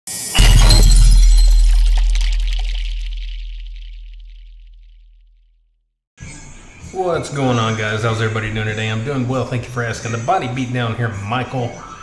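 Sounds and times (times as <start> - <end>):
glass shattering crash: 0.1 - 4.9
deep bass boom: 0.4 - 5.4.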